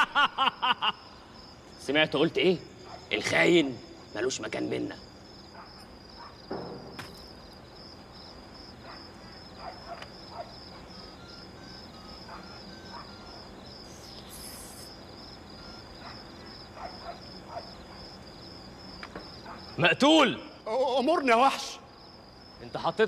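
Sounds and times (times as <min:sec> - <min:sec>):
crickets chirping: 0:00.0 - 0:23.0.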